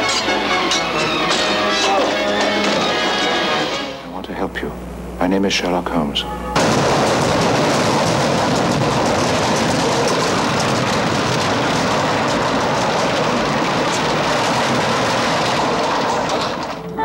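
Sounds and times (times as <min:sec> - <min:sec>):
loud rushing noise: 0:06.6 - 0:16.8.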